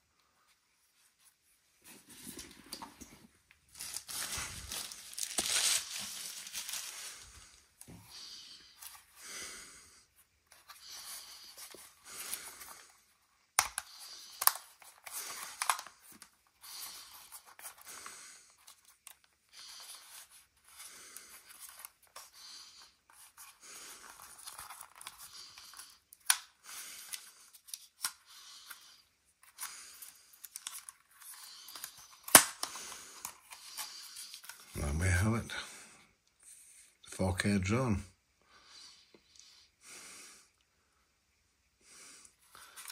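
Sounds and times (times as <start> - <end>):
plastic rustling scrapes: 1.8 - 9.1.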